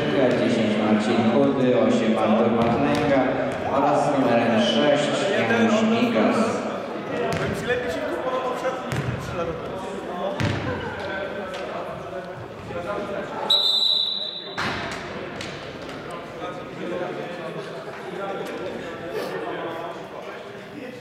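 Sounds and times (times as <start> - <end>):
echoing voices in a hall: 0.0 - 21.0
referee whistle blast: 13.5 - 14.6.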